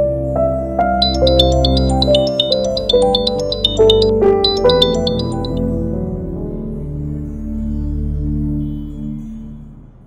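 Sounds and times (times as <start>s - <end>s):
soft background music: 0.0s - 10.0s
smartphone ringtone: 1.0s - 5.6s.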